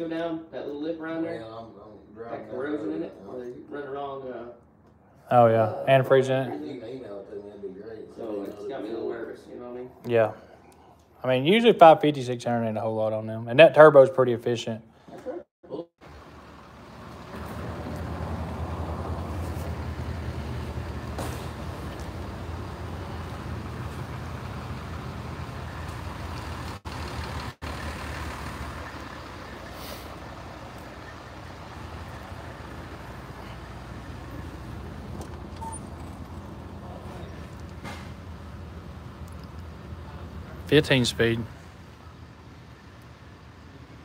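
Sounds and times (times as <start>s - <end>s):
vehicle engine idling: 16.0s - 44.0s.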